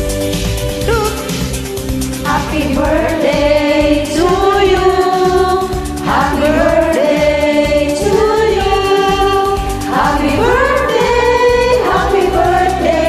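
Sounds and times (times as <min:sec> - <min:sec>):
karaoke backing track: 0:00.0 - 0:13.0
person singing: 0:00.8 - 0:01.5.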